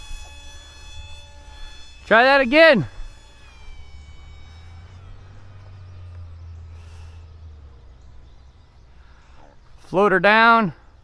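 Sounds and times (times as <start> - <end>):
model airplane propeller whining: 0.0 - 11.0.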